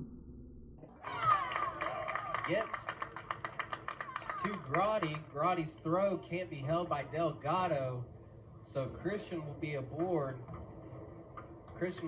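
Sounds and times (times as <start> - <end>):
man commentating: 2.4 - 2.9, 4.4 - 8.0.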